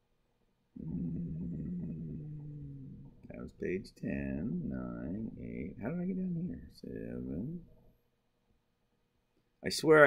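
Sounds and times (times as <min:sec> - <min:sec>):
man groaning hum: 0:00.8 - 0:03.2, 0:04.1 - 0:06.7.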